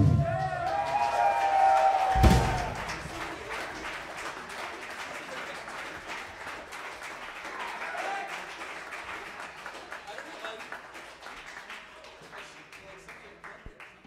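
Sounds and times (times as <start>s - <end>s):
audience applause and cheering: 0.0s - 14.0s
drum hit: 2.1s - 3.1s.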